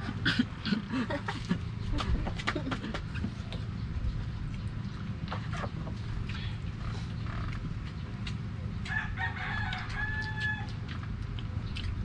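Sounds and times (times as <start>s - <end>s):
steady low hum: 0.0s - 12.0s
rooster crowing: 8.8s - 10.8s.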